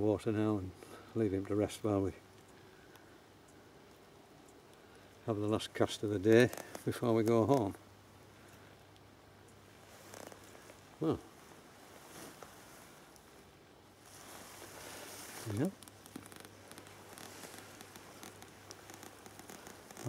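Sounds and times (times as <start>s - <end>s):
faint rustling: 4.7s - 20.0s
person speaking: 5.2s - 7.8s, 11.0s - 11.4s, 15.3s - 15.8s.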